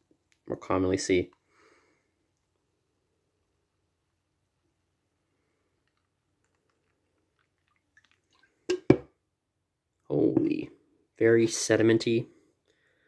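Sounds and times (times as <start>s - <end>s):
sharp knocks of can and glass: 8.7s - 9.1s.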